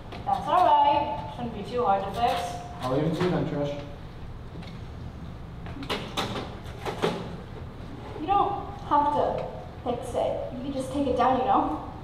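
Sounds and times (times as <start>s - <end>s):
low hall noise: 0.0s - 12.0s.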